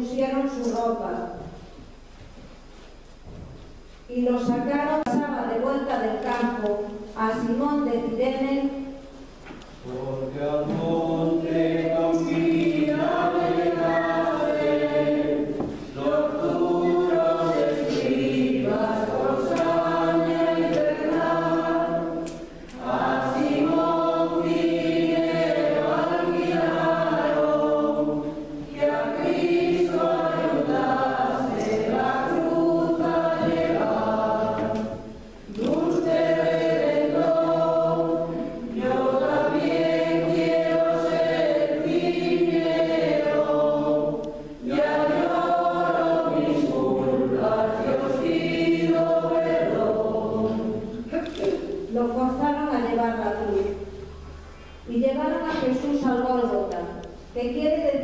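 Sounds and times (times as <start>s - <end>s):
choir singing a slow hymn: 9.8s - 51.1s.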